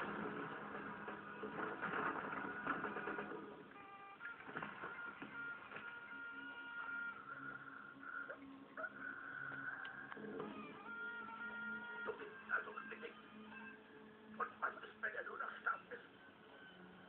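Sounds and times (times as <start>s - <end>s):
film soundtrack from television: 0.0s - 17.0s.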